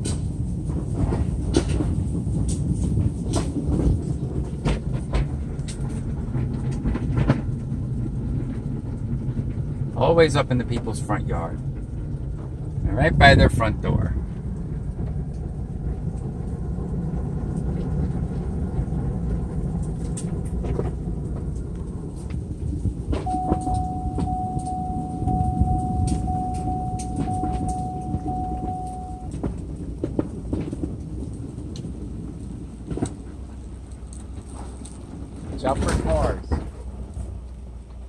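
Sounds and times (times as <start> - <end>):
car engine and road rumble: 0.0 - 38.0
beeps on one pitch: 23.3 - 29.3.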